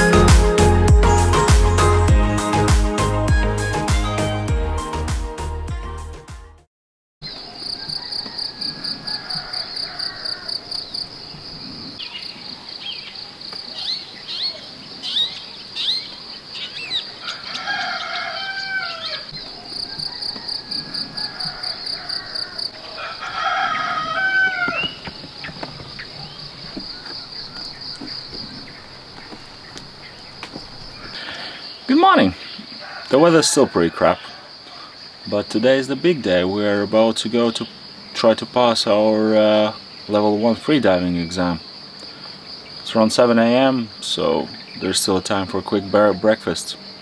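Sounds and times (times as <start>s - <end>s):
insects chirping: 7.2s - 47.0s
rooster crowing: 7.4s - 11.1s, 17.1s - 28.8s, 32.6s - 35.0s.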